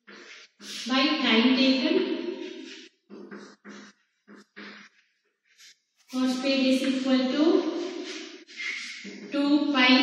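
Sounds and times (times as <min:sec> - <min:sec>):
chalk scratching on blackboard: 0:02.4 - 0:06.9, 0:07.7 - 0:09.3.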